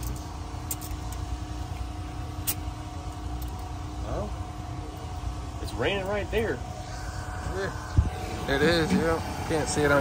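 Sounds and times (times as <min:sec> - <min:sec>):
machine hum and rumble: 0:00.0 - 0:10.0.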